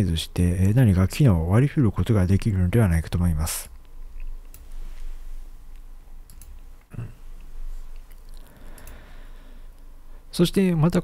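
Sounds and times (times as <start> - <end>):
low steady hum: 0.0 - 11.0
computer mouse clicks: 5.7 - 6.6, 8.1 - 9.0.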